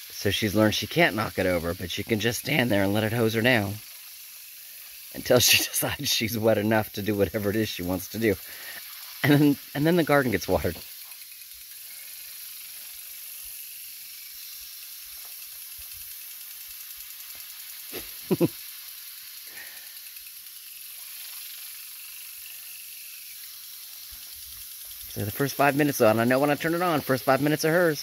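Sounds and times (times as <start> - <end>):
lawn sprinkler hissing: 0.0 - 28.0.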